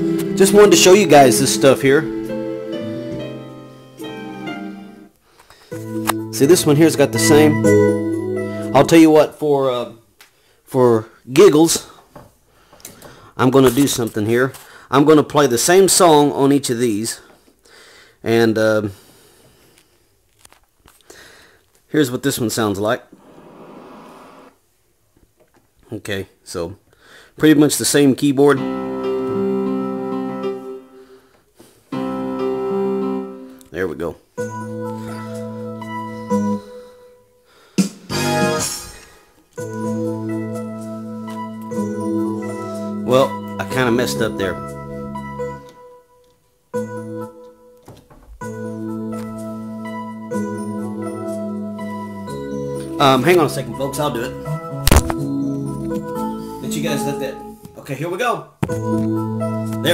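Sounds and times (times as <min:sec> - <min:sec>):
keyboard organ-like chords: 0:00.0 - 0:05.2, 0:05.8 - 0:09.2, 0:28.4 - 0:31.2, 0:31.9 - 0:33.8, 0:39.6 - 0:47.8, 0:48.4 - 0:57.6.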